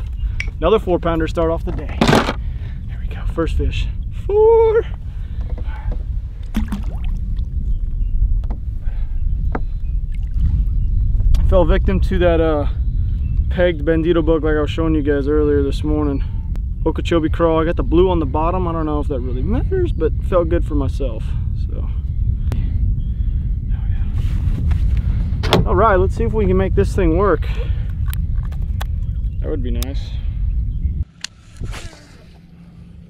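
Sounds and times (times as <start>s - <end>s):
low wind rumble: 0.0s - 33.0s
fish splashing into water: 6.5s - 7.2s.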